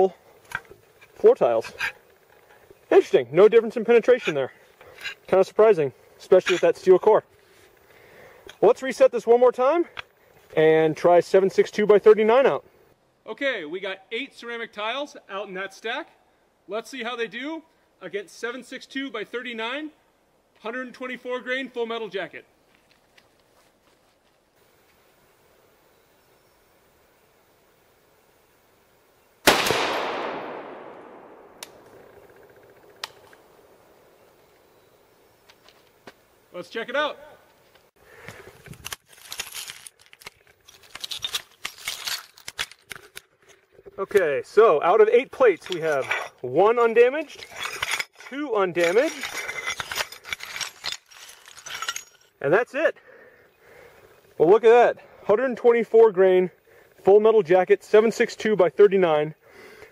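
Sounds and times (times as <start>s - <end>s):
rifle shot echoing: 29.4s - 32.3s
ceramic tile pieces clinking: 47.4s - 52.3s.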